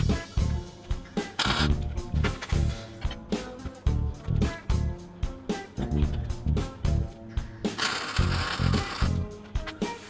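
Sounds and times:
welding arc crackling: 0:07.8 - 0:09.2.

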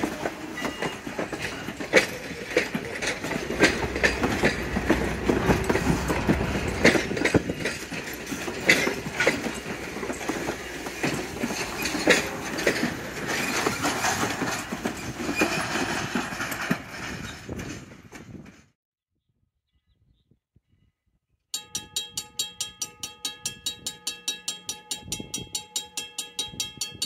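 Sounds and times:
train wheels clicking over rail joints: 0:00.0 - 0:18.7.

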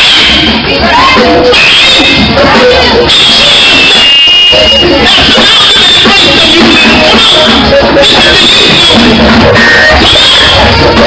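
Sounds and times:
voices singing: 0:00.5 - 0:11.0
live gospel band music: 0:05.9 - 0:11.0.

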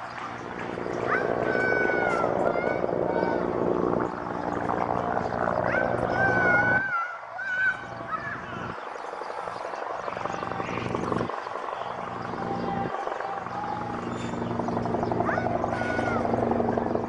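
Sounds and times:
distant raised voices: 0:00.0 - 0:17.0
steady low hum: 0:00.0 - 0:17.0.

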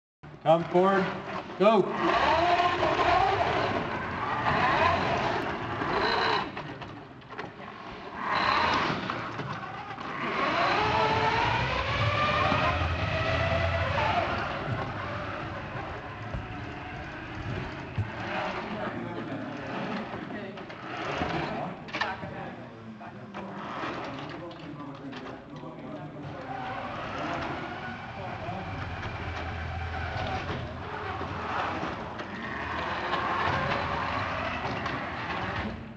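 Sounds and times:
robot electric motors whirring: 0:01.9 - 0:18.9, 0:26.3 - 0:35.9
electric drive motors whining: 0:27.0 - 0:35.8.

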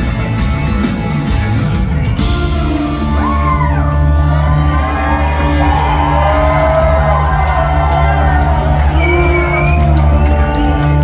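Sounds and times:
rock band playing: 0:00.0 - 0:11.0
crowd cheering and whooping: 0:02.8 - 0:11.0.

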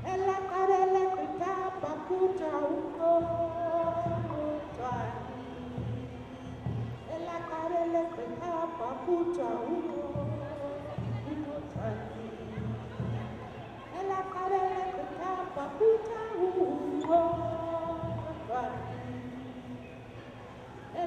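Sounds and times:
woman singing into microphone: 0:00.0 - 0:19.9.

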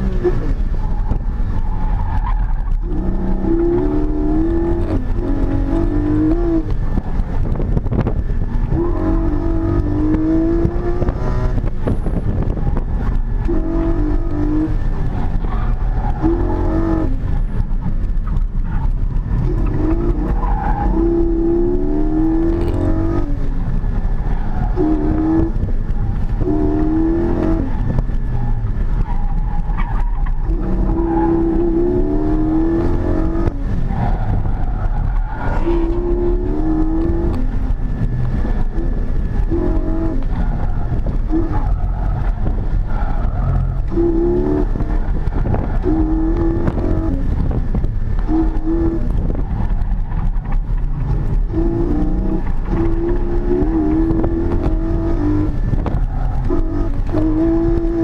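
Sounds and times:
car engine revving: 0:00.0 - 0:58.0.

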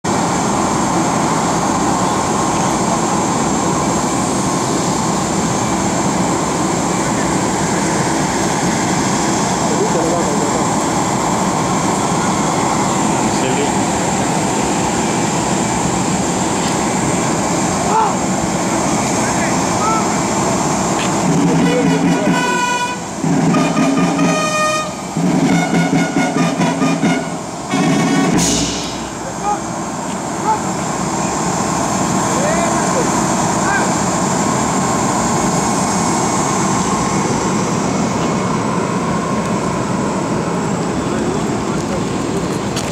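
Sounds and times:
jet turbine idling with whine: 0:00.1 - 0:42.9.

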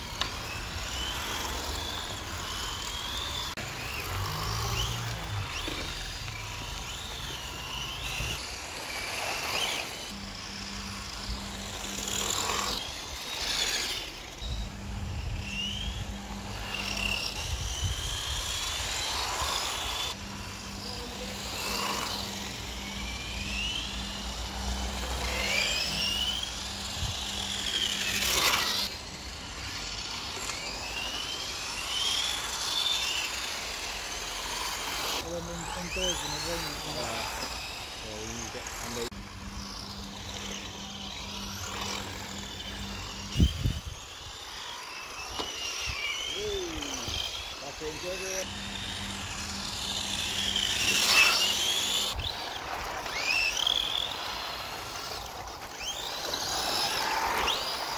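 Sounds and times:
rc car motor whine: 0:00.0 - 0:57.9.

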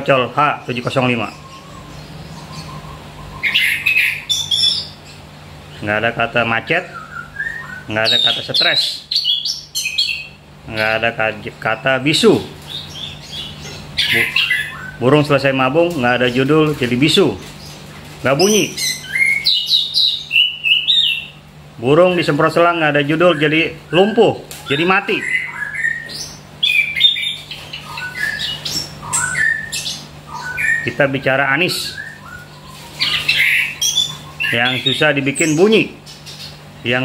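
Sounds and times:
bird chirping: 0:00.0 - 0:37.0
bird harsh call: 0:00.6 - 0:11.2, 0:12.1 - 0:15.6, 0:22.4 - 0:37.0.

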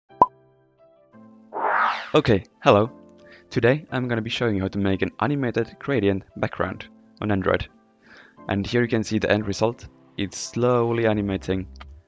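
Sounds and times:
soft music: 0:00.1 - 0:01.5, 0:02.1 - 0:12.0
whoosh: 0:01.6 - 0:02.2.

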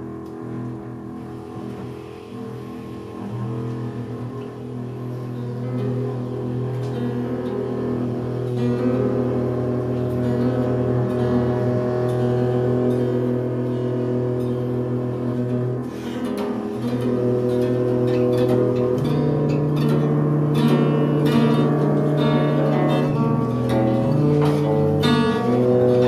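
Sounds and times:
bowed double bass: 0:00.0 - 0:26.0
guitar: 0:00.0 - 0:26.0
tenor saxophone: 0:00.0 - 0:26.0.

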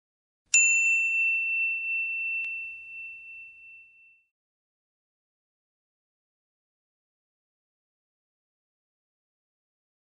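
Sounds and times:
bright bell-like ding: 0:00.5 - 0:04.3.

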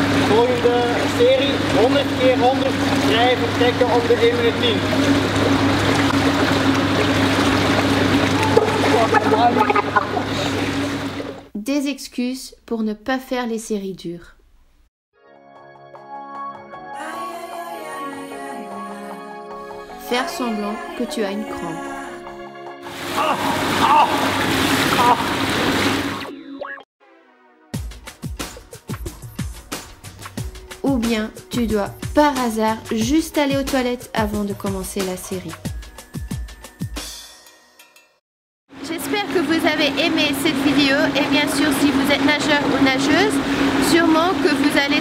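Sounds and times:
pool water splashing: 0:00.0 - 0:11.5, 0:22.8 - 0:26.8, 0:38.9 - 0:45.0
steady low hum: 0:00.0 - 0:11.5, 0:38.9 - 0:45.0.

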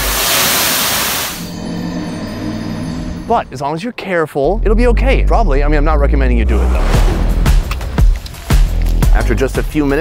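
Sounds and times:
low ominous musical tone: 0:01.4 - 0:09.3.

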